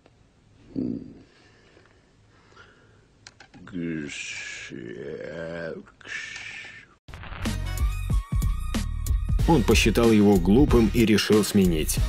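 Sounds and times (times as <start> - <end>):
man making garbled sounds: 0.7 - 1.3, 3.6 - 6.8.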